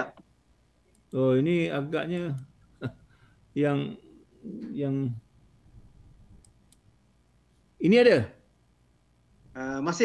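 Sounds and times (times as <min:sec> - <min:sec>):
computer mouse clicks: 0:06.4 - 0:06.9.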